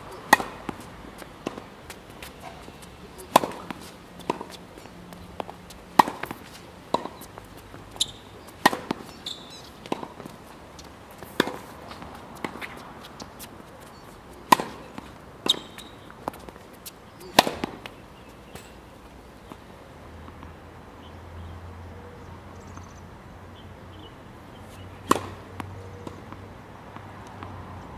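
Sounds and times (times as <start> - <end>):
tennis ball struck by racquets: 0.1 - 16.4, 17.2 - 18.8, 25.0 - 26.2
ball bouncing on hard court: 0.2 - 7.3, 8.0 - 12.8
short high squeaks: 8.0 - 8.3, 9.2 - 9.7, 15.5 - 16.0.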